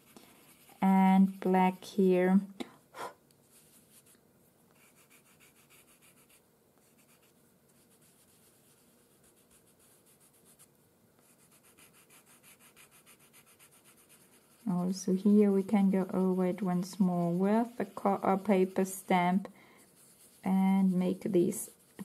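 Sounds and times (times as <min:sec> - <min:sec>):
blending stump rubbing on paper: 0:11.3 - 0:22.0.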